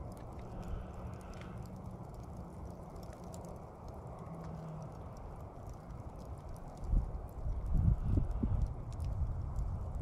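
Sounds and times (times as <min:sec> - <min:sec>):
fire embers crackling: 0:00.0 - 0:10.0
low steady rumble: 0:00.0 - 0:10.0.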